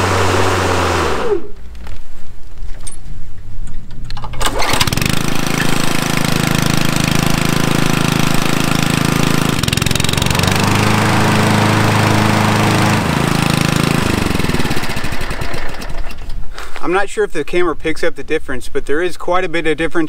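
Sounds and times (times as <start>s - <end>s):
lawn mower engine running: 0.0s - 1.7s, 4.2s - 16.6s
lawn mower pull-start: 0.0s - 1.7s, 4.1s - 16.8s.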